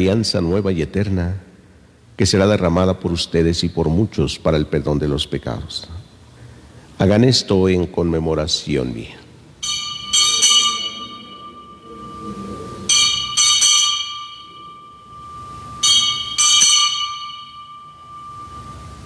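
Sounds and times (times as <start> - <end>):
altar bells ringing: 9.6 - 19.0.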